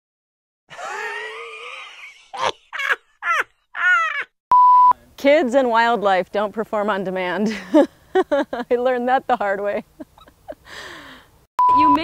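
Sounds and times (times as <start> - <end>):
electronic beep: 11.6 - 12.0.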